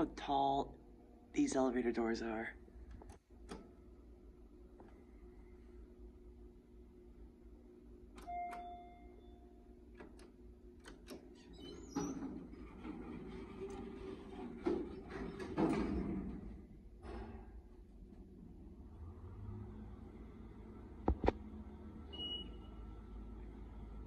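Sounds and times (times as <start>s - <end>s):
elevator low hum: 0.0s - 24.0s
elevator chime: 8.2s - 9.7s, 22.1s - 22.8s
elevator doors sliding shut: 11.1s - 21.0s.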